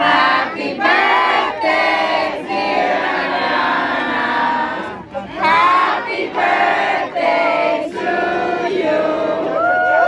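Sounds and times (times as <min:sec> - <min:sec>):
crowd singing together: 0:00.0 - 0:10.0.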